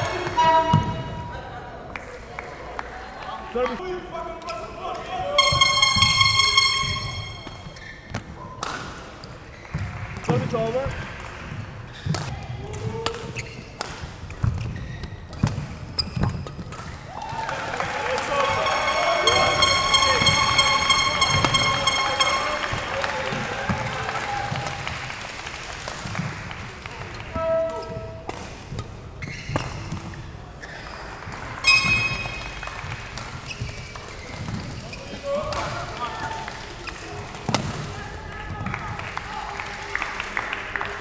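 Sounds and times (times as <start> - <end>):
voices in sports hall: 0.0 - 41.0
rackets hitting shuttlecock: 5.4 - 8.9, 18.2 - 22.9, 31.7 - 33.3
shoes squeaking on court: 13.4 - 16.7, 29.2 - 31.0, 31.6 - 32.6.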